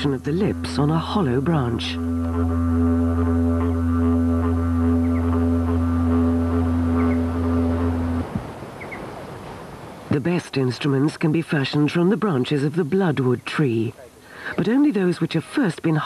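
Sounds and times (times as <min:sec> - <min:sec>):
didgeridoo drone: 0:00.0 - 0:08.4.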